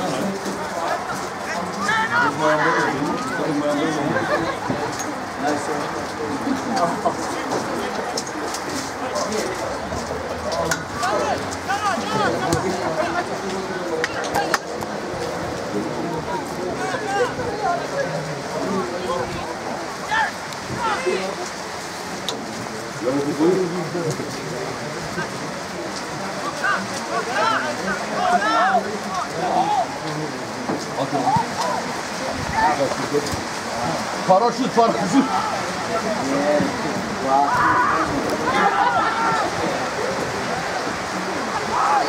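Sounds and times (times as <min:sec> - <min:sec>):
distant shouts and calls: 0:19.9 - 0:21.4, 0:37.4 - 0:42.0.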